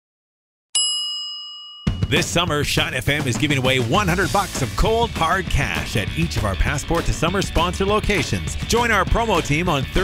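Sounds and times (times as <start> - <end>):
bell-like ding: 0.8 - 2.2
music: 1.8 - 10.0
person speaking: 2.1 - 10.0.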